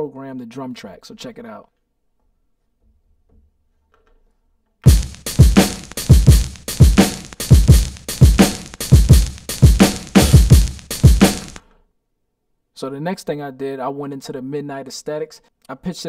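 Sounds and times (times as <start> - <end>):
boom bap drum loop: 4.9 - 11.6.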